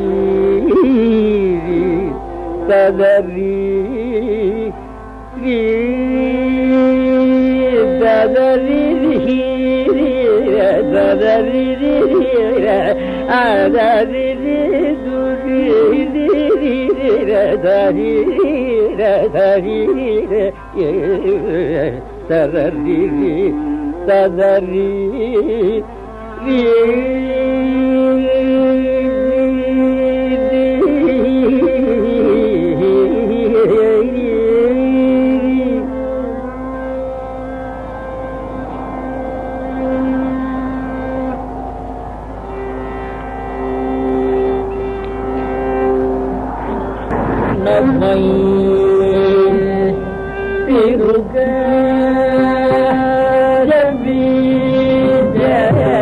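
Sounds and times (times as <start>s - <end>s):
man singing classical music: 0.0s - 37.2s, 43.6s - 56.0s
violin: 0.0s - 56.0s
steady drone: 24.7s - 56.0s
long held melodic note: 34.8s - 56.0s.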